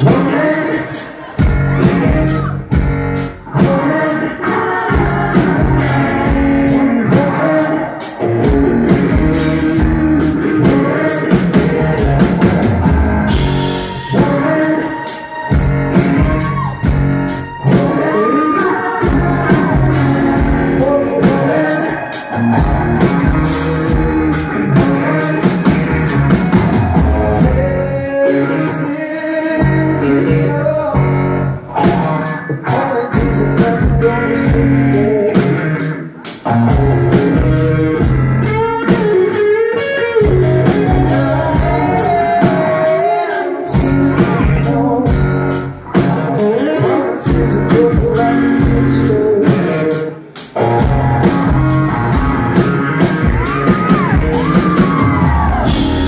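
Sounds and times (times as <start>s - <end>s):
man singing into a microphone: 0.0s - 2.6s, 3.4s - 15.6s, 17.5s - 26.0s, 27.0s - 31.2s, 31.8s - 36.0s, 36.7s - 50.4s
drum kit steady beat: 0.0s - 18.2s, 19.0s - 27.7s, 40.2s - 46.5s, 47.3s - 56.0s
live rock band playing: 0.0s - 56.0s.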